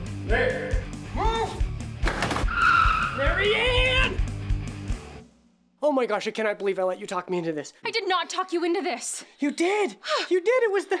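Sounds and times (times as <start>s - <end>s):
trailer music with steady beat: 0.0s - 5.8s
van tires squealing: 2.5s - 3.4s.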